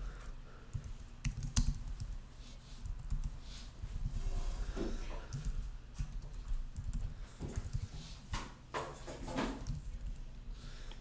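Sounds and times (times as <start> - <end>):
computer keyboard typing: 0.7 - 2.2, 2.8 - 3.4, 5.3 - 7.9.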